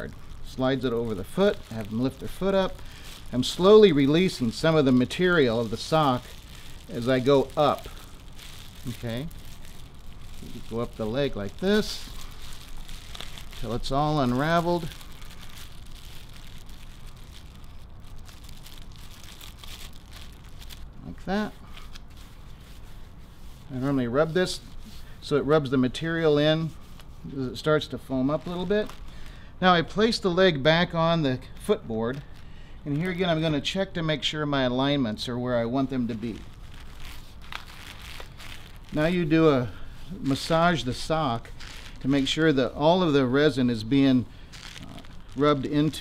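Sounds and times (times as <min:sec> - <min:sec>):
gloved hands rubbing wet fabric: 0:00.0 - 0:29.2, 0:35.8 - 0:46.0
faint rustling and crinkling: 0:00.0 - 0:30.9, 0:31.6 - 0:34.0, 0:35.1 - 0:46.0.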